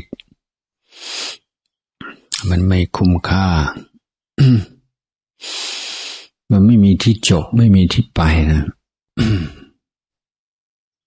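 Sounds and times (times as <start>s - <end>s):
man speaking calmly: 2.3s - 3.9s, 6.5s - 8.8s.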